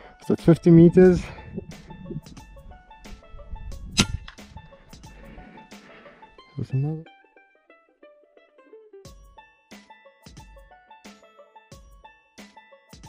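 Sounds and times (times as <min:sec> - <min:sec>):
plucked string music: 0:00.0 - 0:13.0
sharp knock: 0:04.0 - 0:04.4.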